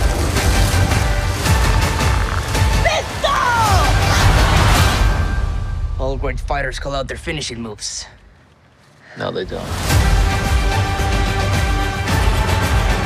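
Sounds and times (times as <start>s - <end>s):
trailer music with heavy bass: 0.0s - 7.1s, 9.7s - 13.0s.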